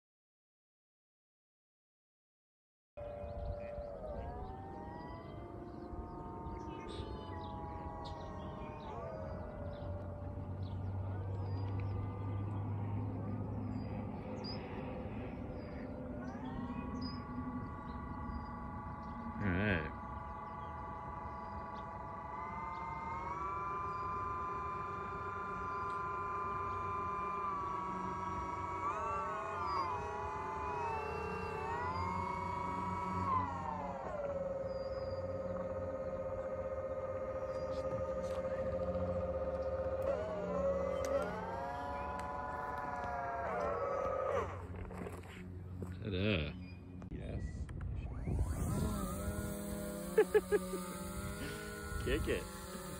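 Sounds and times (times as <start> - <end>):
propeller motors whining: 3.0 - 52.9.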